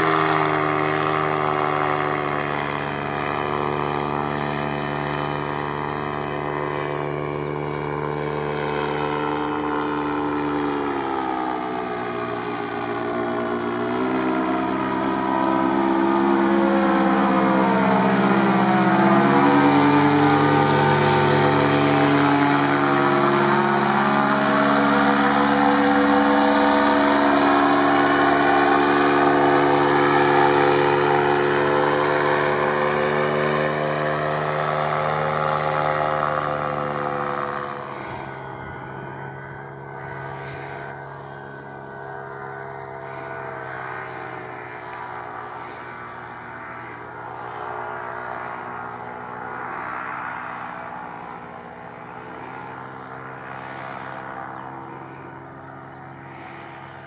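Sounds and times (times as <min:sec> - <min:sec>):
paramotor engine and propeller droning: 0:00.0 - 0:57.0.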